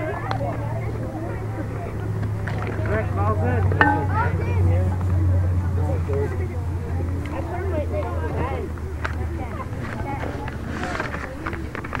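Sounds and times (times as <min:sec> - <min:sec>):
background chatter: 0:00.0 - 0:12.0
steady low hum: 0:01.5 - 0:07.2.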